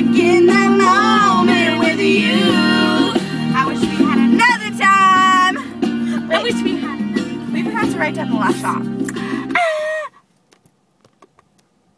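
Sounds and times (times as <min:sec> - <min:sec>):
guitar music with voices: 0:00.0 - 0:09.6.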